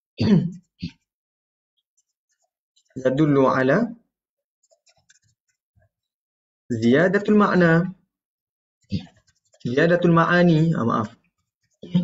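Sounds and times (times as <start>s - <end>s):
man speaking: 3.0s - 4.0s, 9.0s - 11.2s.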